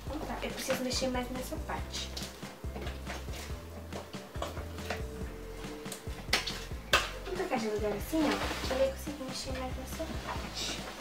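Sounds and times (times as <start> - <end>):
quiet background music: 0.0 - 11.0
slime squishing and crackling: 6.0 - 9.2.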